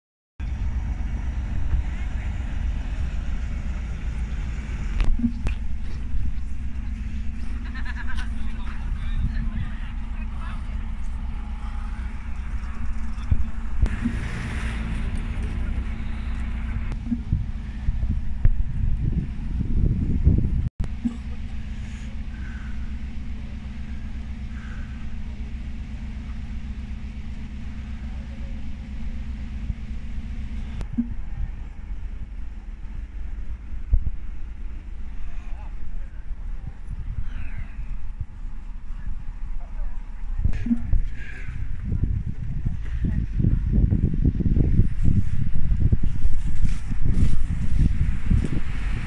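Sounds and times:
bus engine running: 0:00.4 - 0:49.0.

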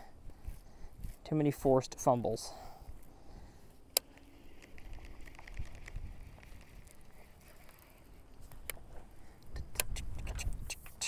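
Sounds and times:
sharp click: 0:09.7 - 0:11.0.

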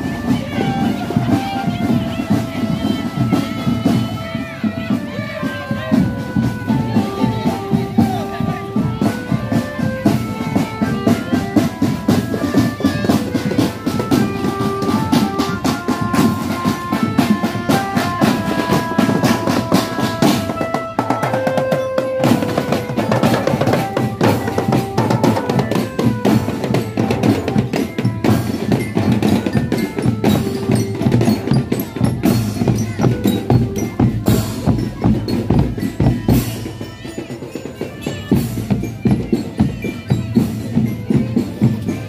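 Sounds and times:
marching drum band playing: 0:00.0 - 0:42.0
snare and bass drums beating: 0:00.0 - 0:42.0.

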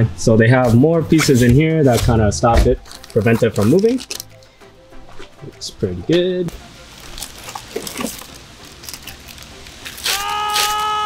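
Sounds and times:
plastic bag crinkling: 0:02.7 - 0:04.5, 0:06.9 - 0:11.0.

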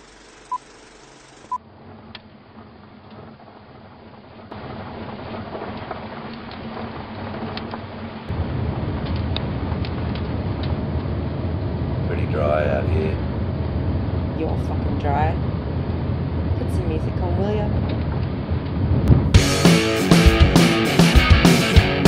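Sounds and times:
car engine and road noise: 0:00.0 - 0:21.2.

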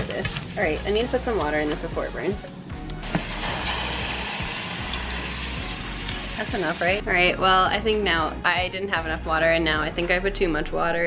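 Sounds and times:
water pouring into a pot: 0:03.0 - 0:06.9
sizzling in hot oil: 0:03.0 - 0:07.0.

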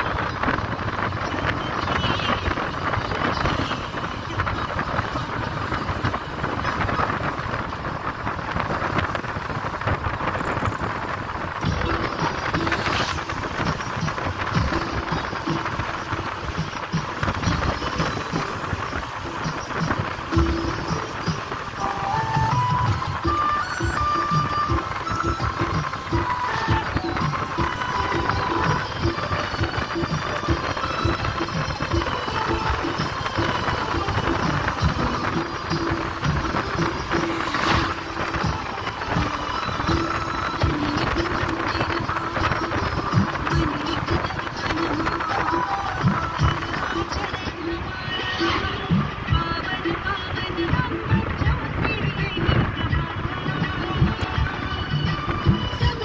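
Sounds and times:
moving vehicle rumble: 0:00.0 - 0:56.0
music playing: 0:00.0 - 0:56.0.

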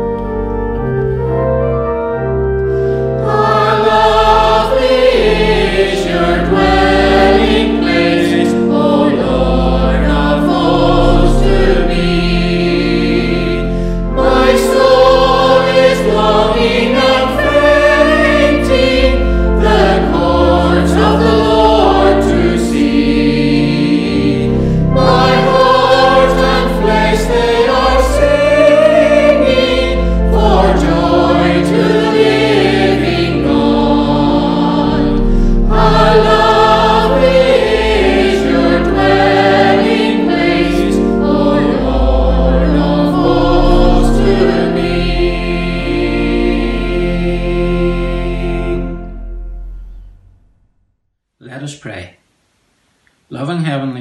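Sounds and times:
choir singing a hymn: 0:00.0 - 0:50.0
organ: 0:00.0 - 0:50.4
singers breathing: 0:13.6 - 0:14.1, 0:24.5 - 0:24.9, 0:35.2 - 0:35.7.

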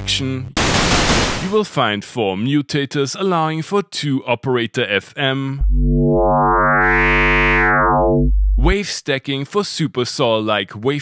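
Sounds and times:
synthesizer low held note: 0:05.6 - 0:08.8.

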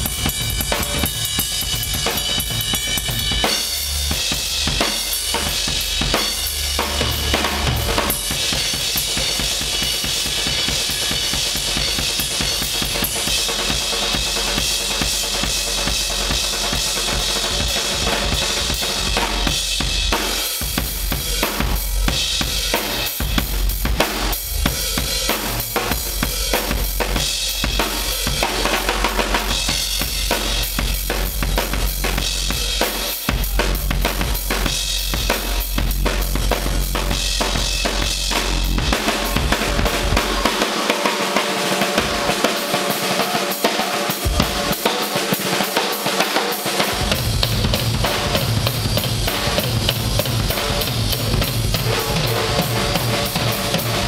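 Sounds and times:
drum kit solo: 0:00.0 - 0:54.0.

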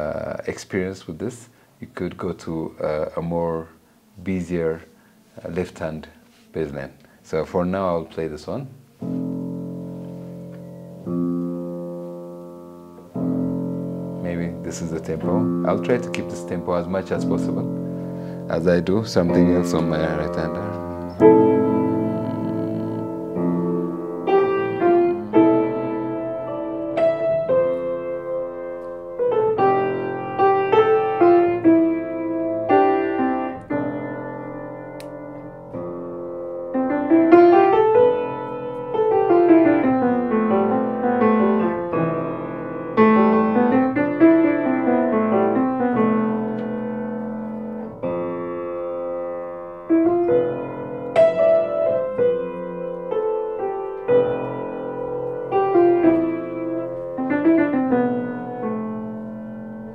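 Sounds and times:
solo piano improvisation: 0:00.0 - 0:59.9.

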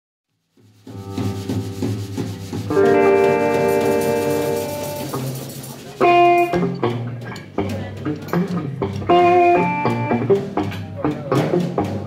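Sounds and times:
blues guitar picking: 0:00.9 - 0:12.0
guitar chord ringing: 0:02.7 - 0:07.2.

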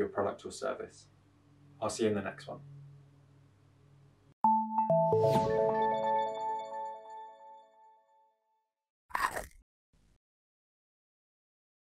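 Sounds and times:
cartoon bite and crunch: 0:09.1 - 0:09.6.

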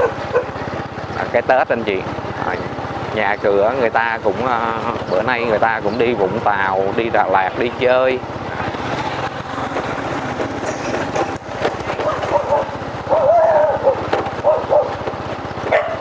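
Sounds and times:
dogs barking: 0:00.0 - 0:01.0, 0:10.7 - 0:16.0
vehicle engine and road noise: 0:00.0 - 0:16.0.

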